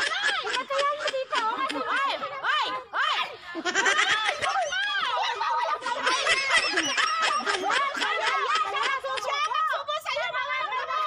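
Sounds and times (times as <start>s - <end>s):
women laughing and calling out: 0.0s - 11.0s.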